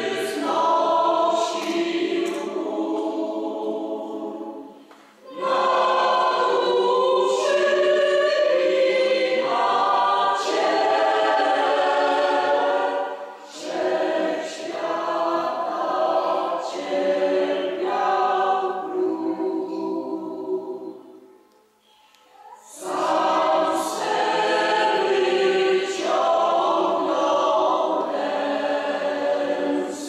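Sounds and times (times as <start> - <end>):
choir singing sustained chords: 0.0 - 21.5, 22.6 - 30.0.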